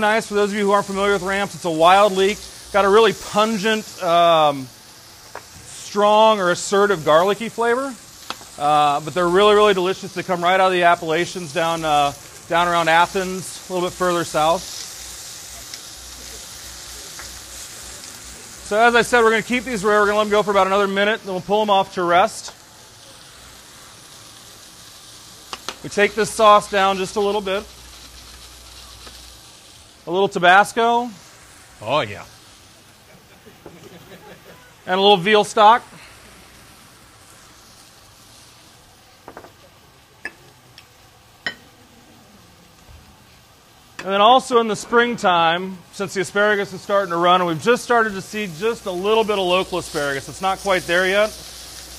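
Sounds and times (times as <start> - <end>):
faint crackles: 0.0 - 44.1, 46.1 - 51.9
steaks sizzling in a pan: 0.0 - 51.9.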